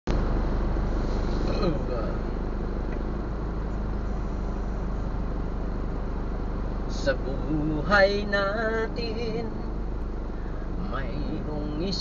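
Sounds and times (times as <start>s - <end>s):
idling engines rumbling: 0.1s - 12.0s.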